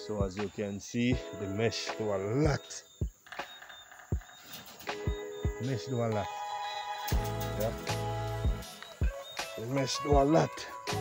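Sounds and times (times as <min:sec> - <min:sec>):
faint steady background tones: 0:00.0 - 0:11.0.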